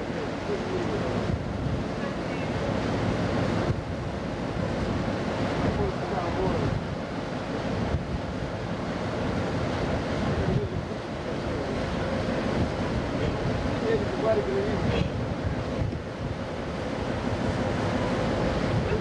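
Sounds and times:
sea water rushing along ship: 0.0 - 19.0
wind buffeting microphone: 0.0 - 19.0.

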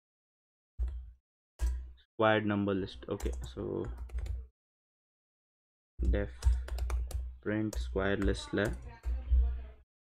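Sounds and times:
keyboard typing: 3.1 - 4.4, 6.1 - 9.3
man speaking: 7.4 - 8.8.

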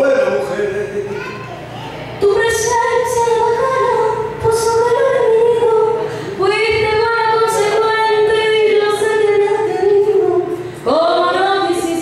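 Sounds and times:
woman singing into a microphone: 2.2 - 12.0.

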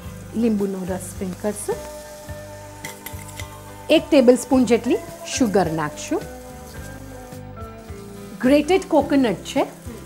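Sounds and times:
background music: 0.0 - 10.0
food sizzling in a pot: 0.0 - 10.0.

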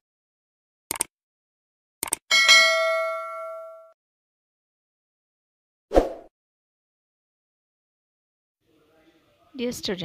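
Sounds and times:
bright bell ding: 2.3 - 4.0.

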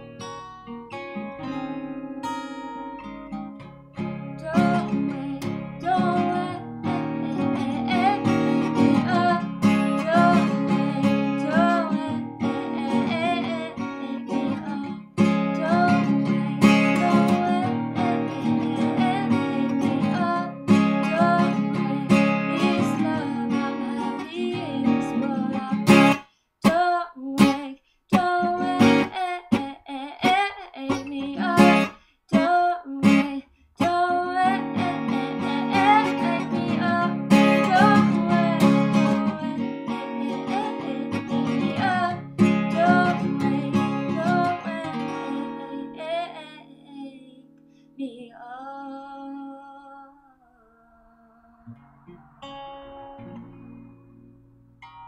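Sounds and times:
acoustic guitar strumming: 0.0 - 26.3, 28.1 - 46.4, 50.4 - 55.0
woman singing: 4.2 - 51.7.

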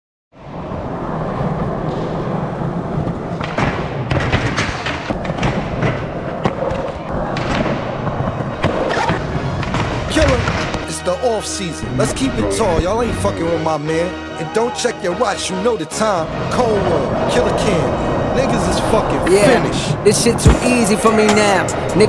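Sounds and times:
skateboard wheels rolling on concrete: 0.4 - 10.8
skateboard clacks: 2.9 - 10.8.

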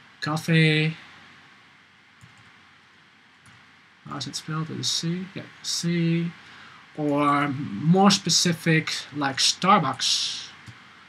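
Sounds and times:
low room hiss: 0.0 - 11.0.

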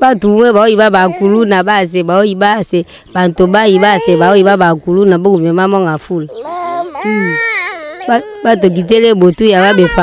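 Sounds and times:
baby crying: 0.8 - 1.6, 3.4 - 4.8, 6.3 - 10.0.

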